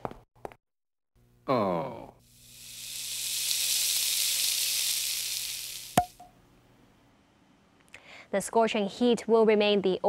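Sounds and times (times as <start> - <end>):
cartoon sizzle hiss: 2.2 - 6.2.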